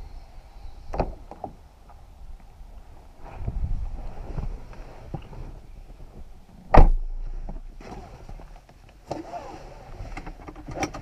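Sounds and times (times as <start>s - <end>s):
car door slamming: 6.7s - 7.1s.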